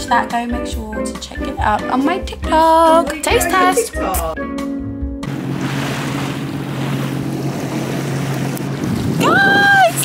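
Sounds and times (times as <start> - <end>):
jet ski engine drone: 5.2 - 10.0
rushing water: 5.3 - 10.0
wind on microphone: 5.5 - 10.0.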